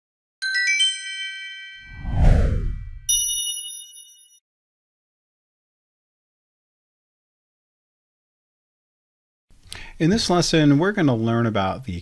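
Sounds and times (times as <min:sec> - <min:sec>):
downward whoosh: 0:01.8 - 0:03.1
low rumble: 0:01.9 - 0:03.1
bright chime ding: 0:03.1 - 0:04.4.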